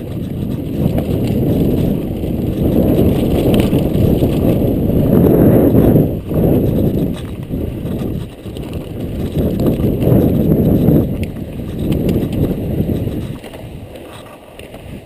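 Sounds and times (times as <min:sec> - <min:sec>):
bike rattling: 0:00.0 - 0:15.0
bike tyres rumbling over stones: 0:00.0 - 0:15.0.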